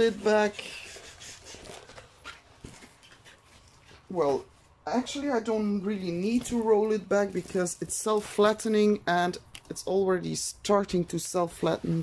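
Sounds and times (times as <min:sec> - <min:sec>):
canvas rustling and crinkling: 0:00.0 - 0:10.0.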